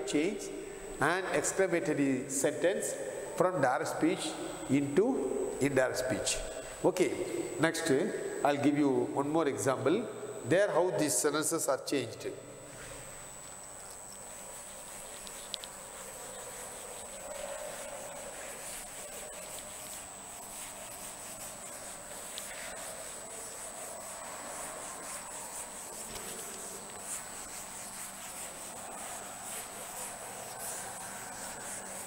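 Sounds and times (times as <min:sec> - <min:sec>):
cloth rubbing on chalkboard: 0:12.7 - 0:32.0.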